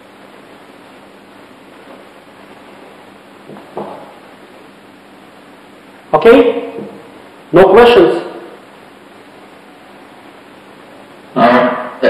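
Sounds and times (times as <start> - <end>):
low room tone hiss: 0.0 - 12.0
person speaking: 6.1 - 8.6.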